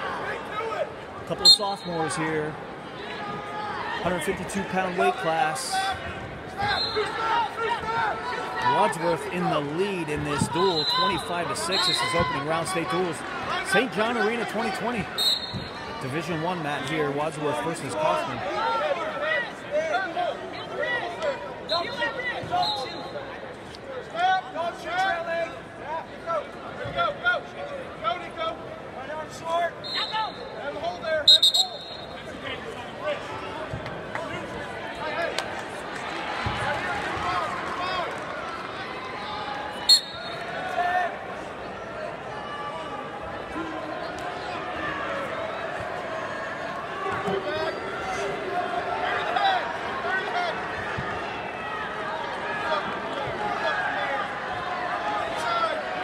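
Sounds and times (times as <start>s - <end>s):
coaches and spectators shouting: 0.0s - 56.0s
referee's whistle blasts: 1.4s - 2.2s, 6.6s - 7.2s, 10.6s - 12.4s, 15.2s - 15.8s, 21.7s - 23.2s, 29.8s - 30.6s, 31.2s - 32.3s, 39.9s - 40.5s.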